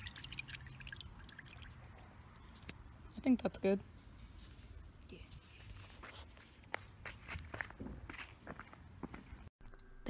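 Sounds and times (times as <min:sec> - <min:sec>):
footsteps on pavement: 0:05.7 - 0:09.5.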